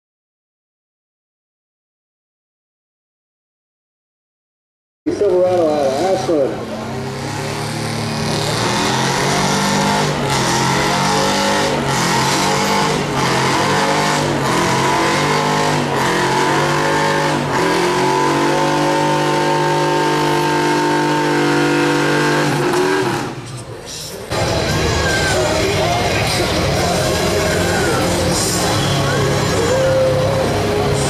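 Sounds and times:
pickup engine at high revs: 5.2s - 23.6s, 24.3s - 31.0s.

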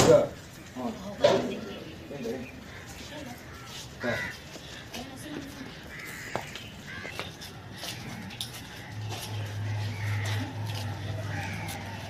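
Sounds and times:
harsh caw-like bird calls: 2.4s - 4.8s, 5.8s - 12.0s.

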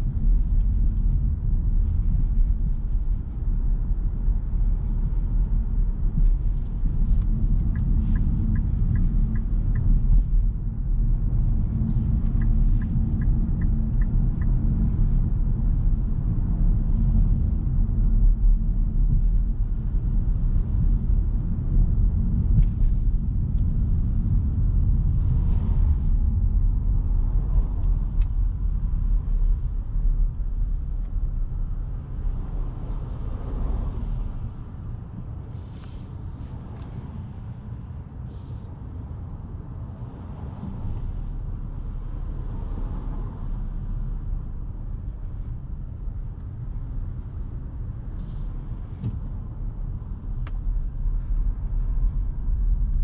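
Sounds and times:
car road noise rumble: 0.0s - 53.0s
light ticks: 7.2s - 10.4s, 12.0s - 14.6s.

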